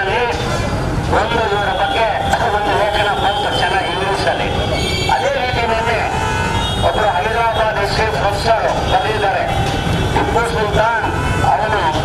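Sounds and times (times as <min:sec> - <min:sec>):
man speaking into a microphone: 0:00.0 - 0:12.0.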